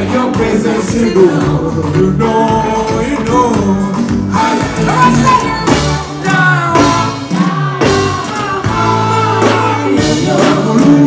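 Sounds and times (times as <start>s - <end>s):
live rock band playing: 0.0s - 11.0s
man singing: 0.0s - 11.0s.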